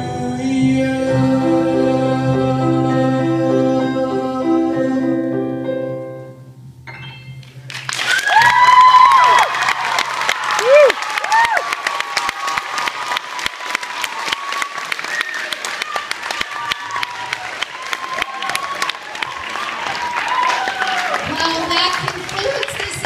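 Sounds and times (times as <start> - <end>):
audience clapping: 7.7 - 23.0
high whoops: 8.0 - 21.4.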